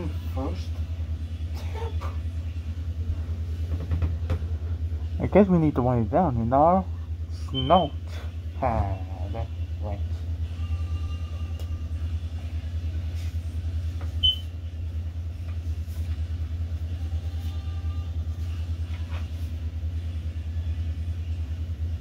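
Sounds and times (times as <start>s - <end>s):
steady low rumble: 0.0s - 22.0s
short high chirp: 14.2s - 14.5s.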